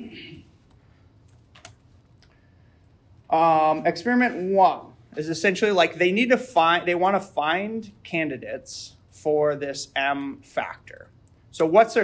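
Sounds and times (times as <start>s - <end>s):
faint keyboard keystrokes: 0.6s - 2.3s.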